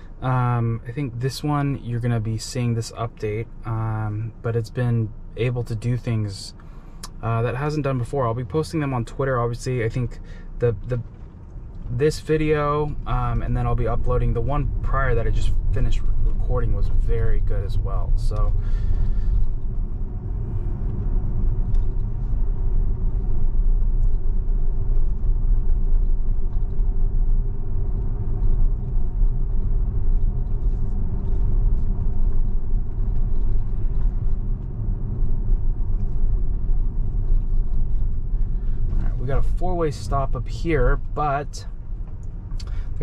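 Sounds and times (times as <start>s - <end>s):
road and tyre noise in car: 0.0s - 43.0s.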